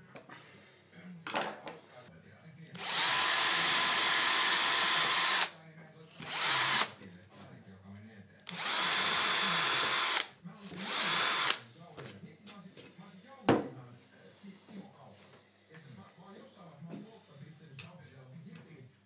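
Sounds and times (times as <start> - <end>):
power drill boring into plywood: 2.8 - 5.5, 6.2 - 6.9, 8.5 - 11.6.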